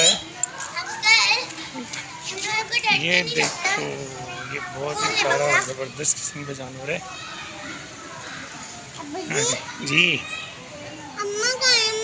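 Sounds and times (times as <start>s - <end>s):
children's voices playing: 0.0s - 12.0s.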